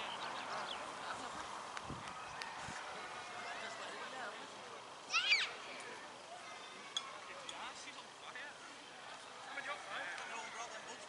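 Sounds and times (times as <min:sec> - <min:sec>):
high-pitched shout: 0:05.1 - 0:05.6.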